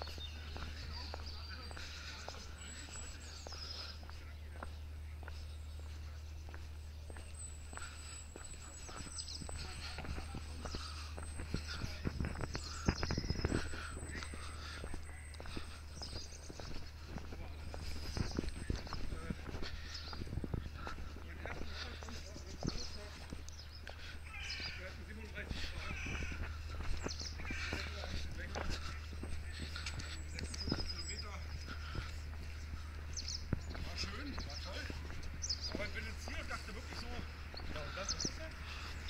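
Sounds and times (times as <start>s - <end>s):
bird calls: 0.0s - 39.0s
footsteps on brick paving: 0.0s - 39.0s
high bird trill: 22.2s - 28.1s.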